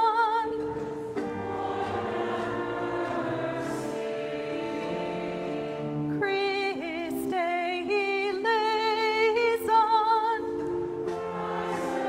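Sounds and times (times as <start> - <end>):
congregation singing: 0.8 - 6.2, 11.0 - 12.0.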